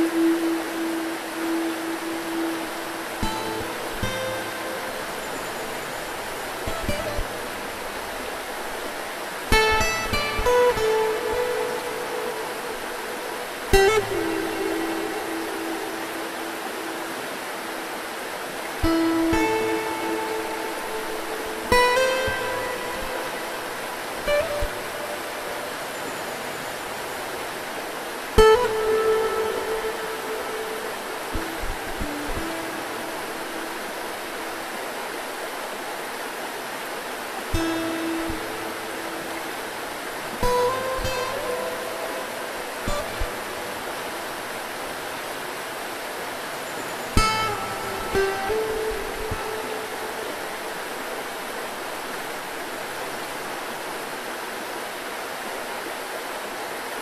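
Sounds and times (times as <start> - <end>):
shallow rocky river rushing: 0.0 - 57.0
plucked acoustic guitar: 9.5 - 12.4, 13.7 - 16.0, 18.8 - 23.5, 24.2 - 25.0, 28.4 - 33.0, 40.3 - 43.6.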